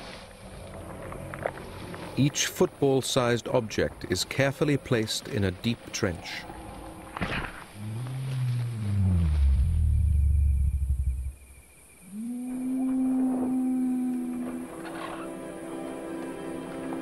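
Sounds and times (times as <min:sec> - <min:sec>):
deep dinosaur moan: 0:07.8 - 0:11.3, 0:12.1 - 0:14.9
music with long held note: 0:12.9 - 0:17.0.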